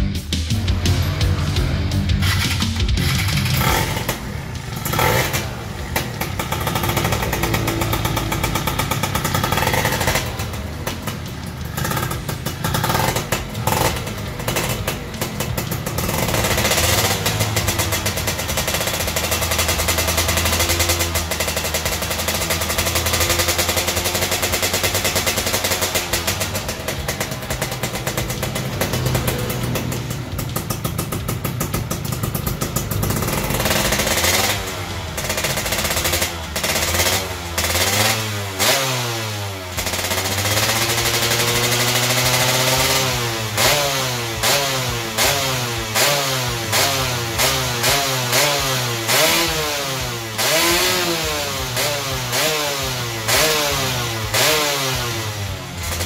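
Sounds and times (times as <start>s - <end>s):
two-stroke engine revving: 0.2s - 56.0s.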